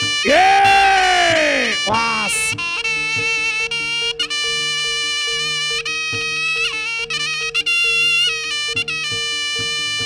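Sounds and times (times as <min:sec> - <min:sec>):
shrill double-reed trumpet melody: 0:00.0 - 0:05.0.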